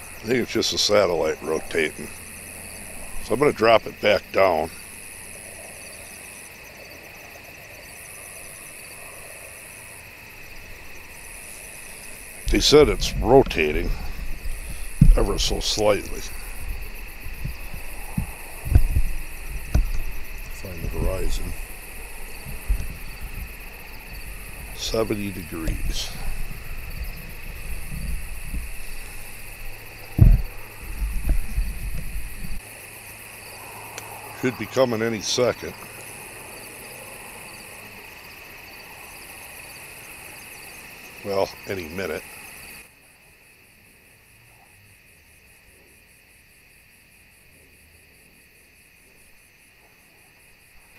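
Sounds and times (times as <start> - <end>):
night insects trilling: 0.0 - 50.9
loud thump: 13.8 - 15.6, 30.2 - 32.6.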